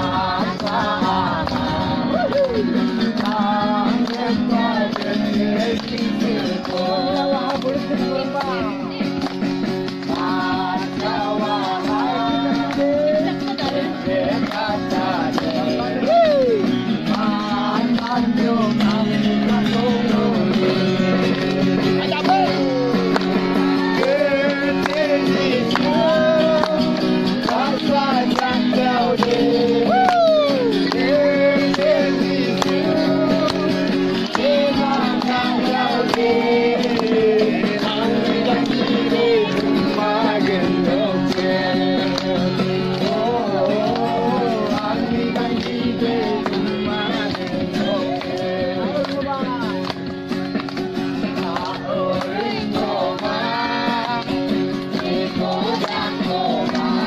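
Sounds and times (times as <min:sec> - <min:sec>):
acoustic guitar: 0:00.0 - 0:57.0
group of voices singing: 0:00.0 - 0:57.0.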